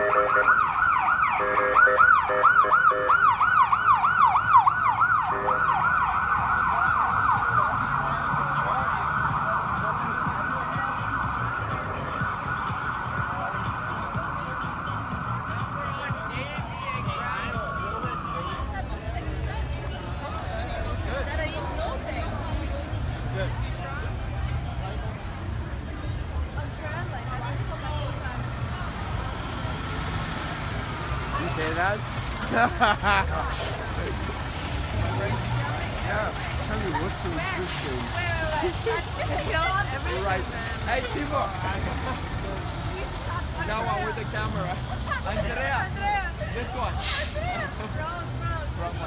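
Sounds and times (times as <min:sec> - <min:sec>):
street chatter: 0:00.0 - 0:49.0
vehicle engines rumbling: 0:00.0 - 0:49.0
people talking and laughing: 0:02.0 - 0:49.0
fire engine diesel rumble: 0:24.0 - 0:45.5, 0:46.2 - 0:48.4.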